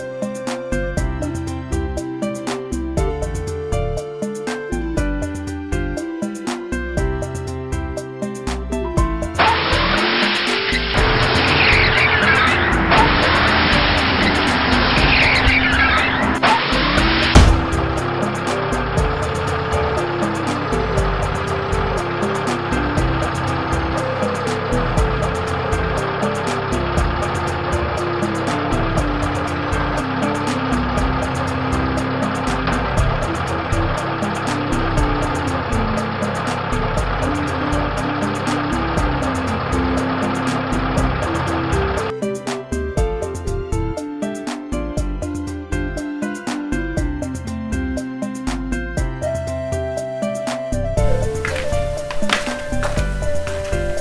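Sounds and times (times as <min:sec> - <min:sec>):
background music: 0:00.0 - 0:54.0
loud crash: 0:09.4 - 0:18.1
car tyres screeching: 0:09.4 - 0:42.1, 0:51.0 - 0:54.0.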